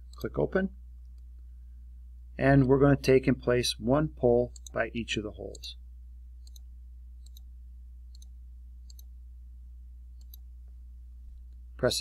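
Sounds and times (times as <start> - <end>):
steady low hum: 0.0 - 12.0
faint computer mouse clicks: 6.4 - 7.5, 8.1 - 9.1, 10.2 - 10.5.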